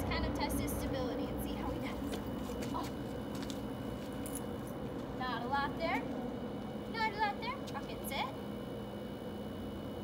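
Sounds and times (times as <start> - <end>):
steady low hum: 0.0 - 10.0
leash and collar jingling: 2.0 - 4.8.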